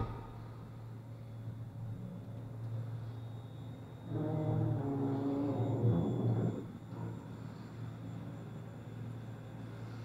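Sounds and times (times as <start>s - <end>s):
pitched mechanical drone: 0.0s - 9.8s
low machinery hum: 0.0s - 10.0s.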